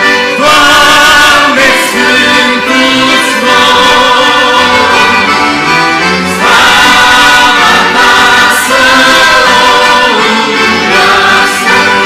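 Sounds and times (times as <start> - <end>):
accordion: 0.0 - 12.0
choir singing a hymn: 0.0 - 12.0.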